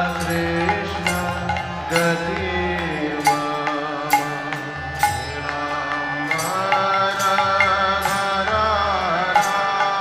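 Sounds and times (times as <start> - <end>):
devotional song melody: 0.0 - 10.0
struck percussion accents: 0.0 - 10.0.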